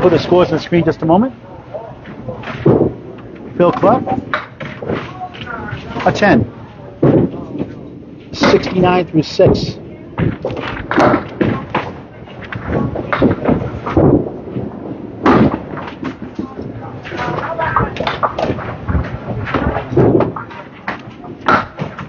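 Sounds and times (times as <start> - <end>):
people talking: 0.0 - 2.8, 3.5 - 13.9, 16.2 - 21.7
bowling balls and pins clattering: 1.7 - 22.0.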